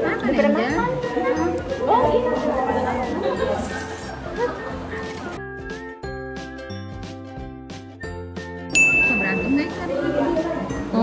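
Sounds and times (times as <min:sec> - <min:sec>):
tinkling background music: 0:08.0 - 0:11.0
high-pitched ding: 0:08.7 - 0:09.8.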